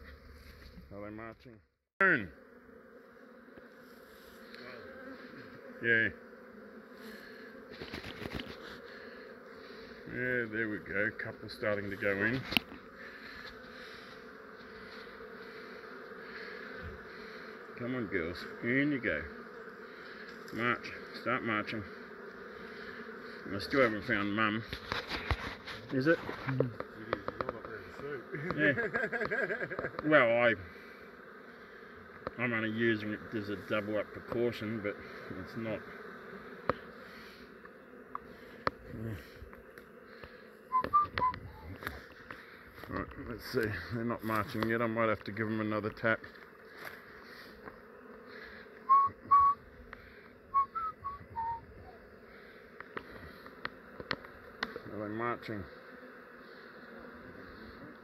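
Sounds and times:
bees buzzing: 0.0s - 1.3s, 2.0s - 58.0s
short whistled notes: 40.7s - 41.4s, 50.6s - 51.6s.

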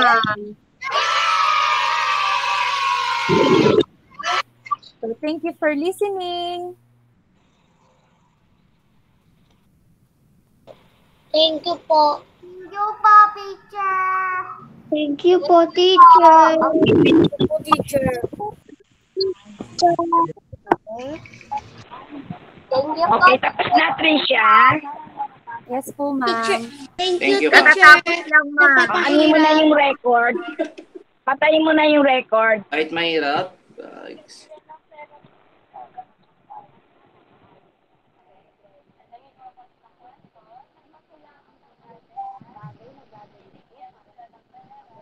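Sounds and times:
children's voices over video call: 0.0s - 6.6s, 10.7s - 18.7s, 20.7s - 32.7s, 34.4s - 36.8s, 39.0s - 45.0s
children cheering: 0.8s - 4.4s.

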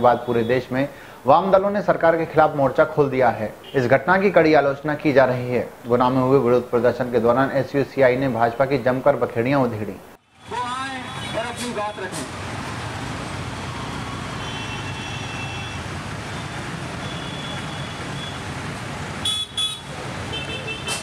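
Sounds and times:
street traffic: 0.0s - 21.0s
vehicle horns honking: 10.4s - 12.3s, 14.3s - 18.4s, 19.2s - 21.0s.

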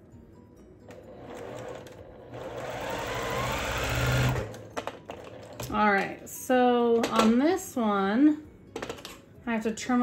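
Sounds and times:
sewing machine stitching: 0.9s - 4.7s.

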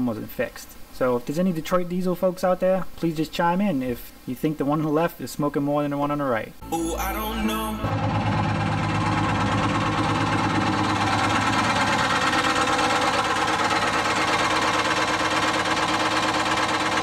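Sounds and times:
two-stroke diesel engine running: 6.8s - 17.0s.

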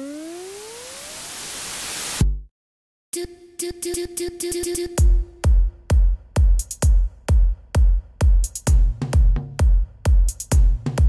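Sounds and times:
white-noise riser: 0.0s - 2.4s.

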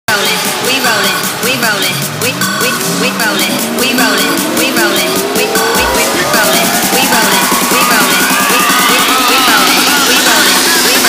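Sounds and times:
swooping pitch-bent synth sounds: 1.4s - 10.0s
rising tone: 2.5s - 9.5s
low boom: 4.5s - 8.4s.

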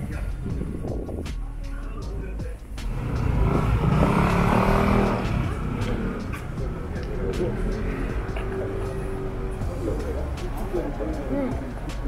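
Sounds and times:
motor vehicle passing: 2.7s - 12.0s.

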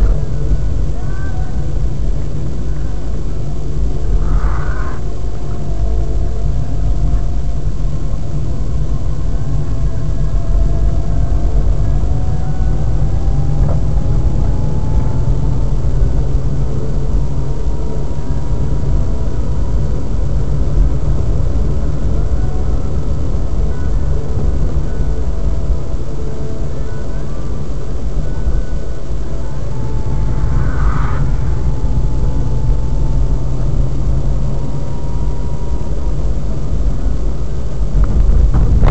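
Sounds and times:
engine and road rumble: 0.0s - 38.9s
faint rising whine: 0.0s - 38.9s.

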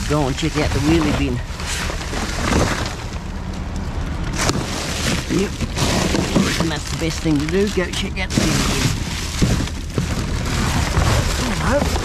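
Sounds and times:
plastic rubbish rustling: 0.0s - 12.0s
sharp crackle: 0.0s - 12.0s.

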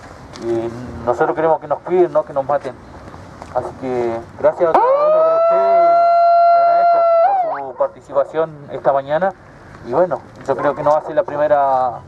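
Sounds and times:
megaphone siren steady high tone: 4.7s - 7.9s.

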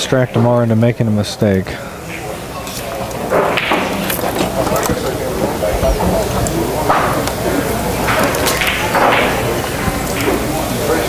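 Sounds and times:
indistinct background voices: 1.4s - 11.0s.

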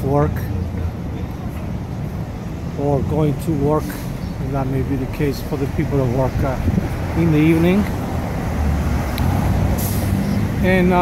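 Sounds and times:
cars and trucks passing: 0.0s - 11.0s.

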